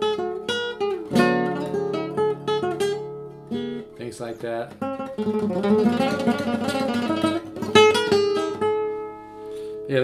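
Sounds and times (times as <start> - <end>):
guitar chord ringing: 0.0 - 4.0
classical guitar playing notes: 0.0 - 9.8.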